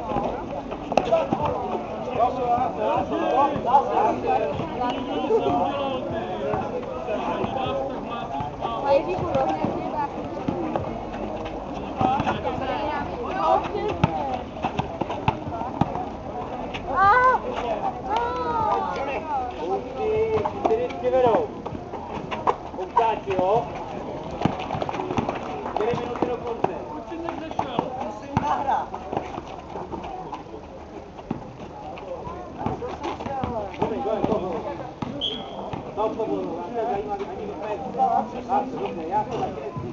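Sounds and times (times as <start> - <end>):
basketball bouncing on asphalt: 0.0 - 4.8, 5.4 - 7.7, 8.4 - 16.6, 19.6 - 30.1, 31.2 - 36.6
voices of players and spectators: 0.0 - 39.9.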